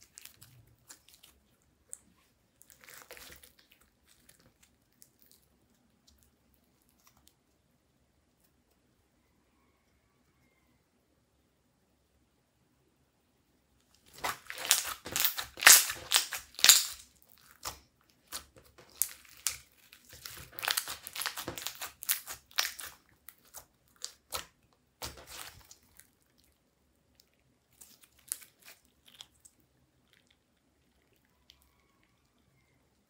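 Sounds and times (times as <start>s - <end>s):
slime crackling and popping: 2.6s - 5.4s, 14.0s - 26.4s, 27.7s - 30.4s.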